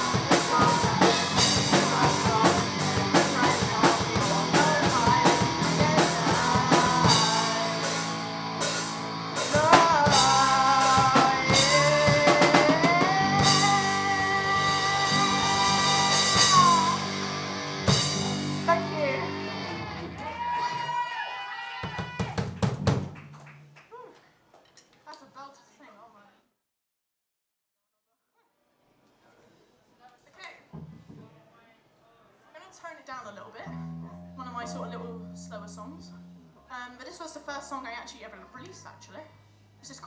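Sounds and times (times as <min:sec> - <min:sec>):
people talking: 0:00.0 - 0:07.6, 0:32.6 - 0:36.1, 0:36.7 - 0:40.0
electric guitar and bass chord ringing: 0:05.1 - 0:12.2, 0:12.8 - 0:20.2, 0:33.7 - 0:36.7
people whooping: 0:20.0 - 0:22.5
drum hits: 0:21.9 - 0:23.2
amplified guitar low note: 0:33.7 - 0:36.7.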